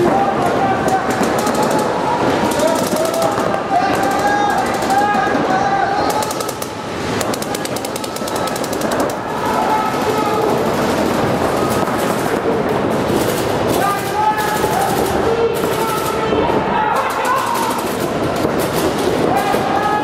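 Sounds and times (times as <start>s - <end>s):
paintball markers firing: 0.8s - 5.4s, 6.1s - 11.0s.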